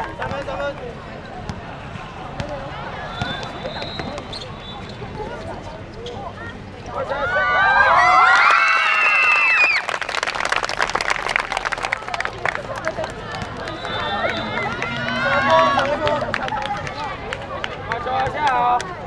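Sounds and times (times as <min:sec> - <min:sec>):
teenagers laughing and shouting: 0:07.0 - 0:09.8, 0:12.3 - 0:18.7.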